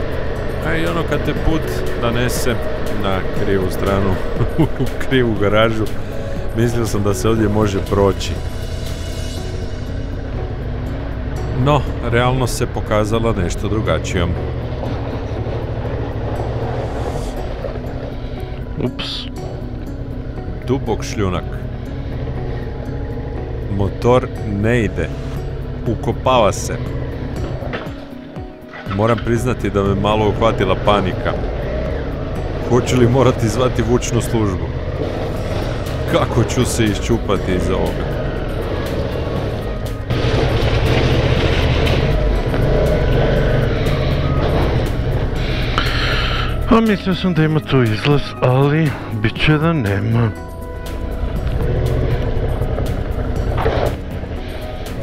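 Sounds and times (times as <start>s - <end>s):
motorcycle engine running: 0.0s - 49.1s, 50.3s - 55.0s
tyres over loose gravel: 0.0s - 55.0s
motorcycle engine under throttle: 29.5s - 45.8s.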